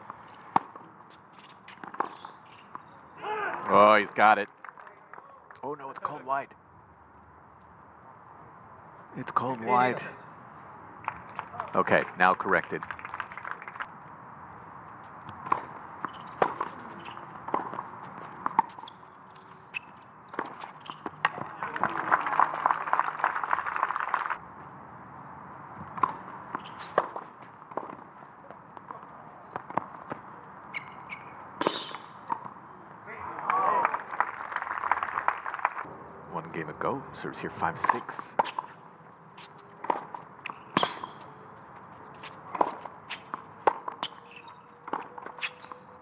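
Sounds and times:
tennis ball hits and bounces: 0.0s - 3.8s, 15.2s - 22.2s, 25.8s - 32.6s, 39.4s - 45.8s
crowd applause: 12.5s - 13.9s, 21.5s - 24.4s, 33.3s - 35.9s.

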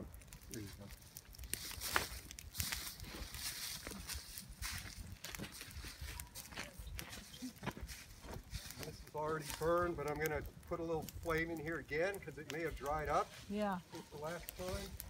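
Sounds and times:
low flames crackling: 0.0s - 15.0s
footsteps crunching pine needles: 0.6s - 10.0s, 12.5s - 15.0s.

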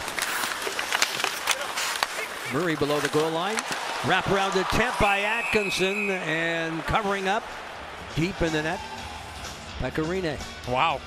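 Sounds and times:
hockey sticks and puck clacking: 0.0s - 7.4s
arena crowd noise: 1.5s - 11.0s.

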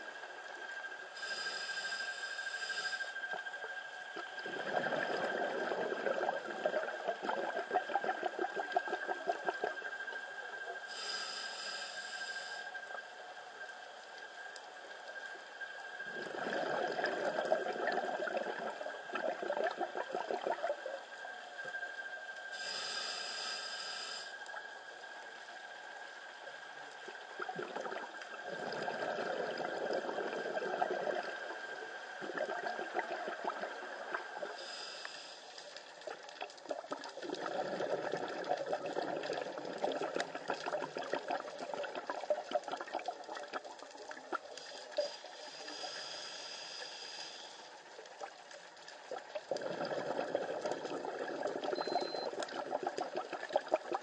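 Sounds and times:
hissing regulator inhale: 1.2s - 3.3s, 10.9s - 12.9s, 22.5s - 24.5s, 34.4s - 36.0s, 44.6s - 47.8s
bubbling exhaled air: 4.2s - 9.9s, 16.1s - 21.0s, 27.2s - 35.0s, 35.9s - 46.5s, 49.0s - 54.0s.

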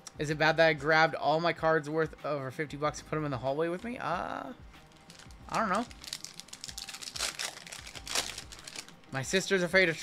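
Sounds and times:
foil wrapper crinkling: 4.8s - 9.0s.

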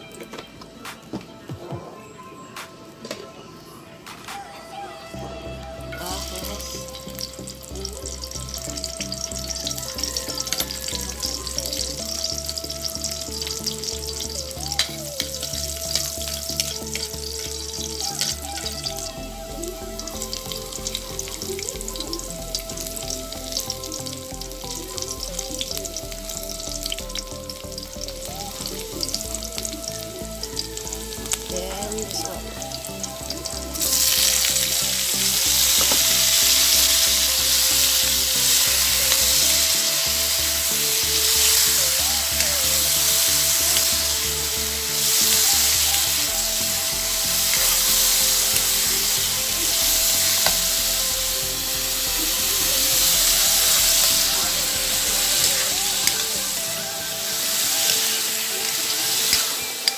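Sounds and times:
loud steady sizzle: 5.6s - 59.9s
food frying in oil: 6.0s - 19.1s, 19.9s - 59.9s.

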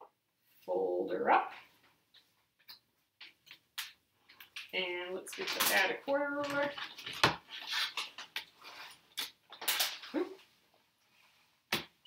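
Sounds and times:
paper rustling: 5.4s - 10.1s.

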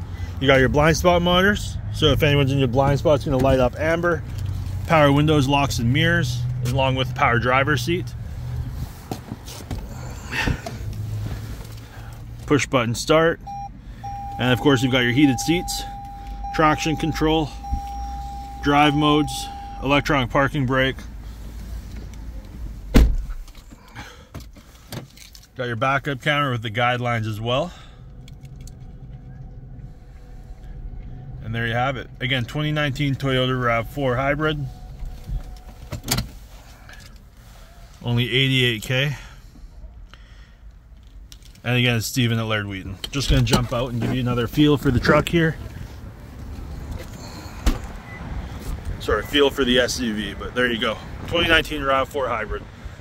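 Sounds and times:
car cabin rumble: 13.5s - 24.9s, 25.8s - 37.4s
car door shutting thump: 22.9s - 23.5s, 47.6s - 48.0s
low rumble: 26.4s - 37.4s.

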